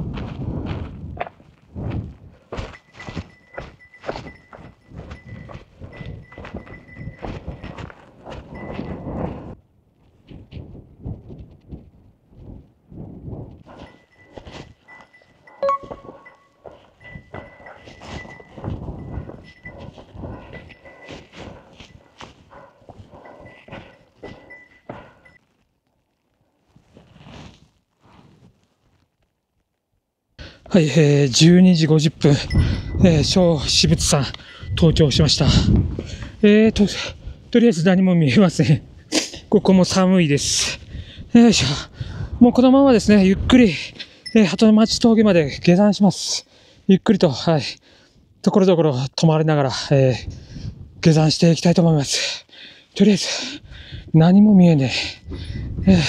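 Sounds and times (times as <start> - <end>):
footsteps on stone and gravel: 0.0 - 10.6, 13.6 - 25.5
faint high tone: 14.9 - 19.9.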